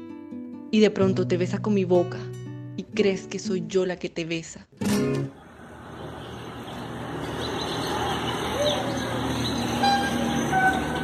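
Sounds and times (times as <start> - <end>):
street traffic noise: 4.8 - 11.0.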